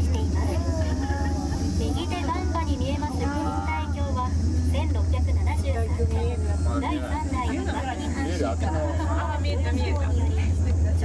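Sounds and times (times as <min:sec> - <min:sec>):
gondola cabin rumbling: 0:00.0 - 0:11.0
people talking: 0:00.0 - 0:11.0.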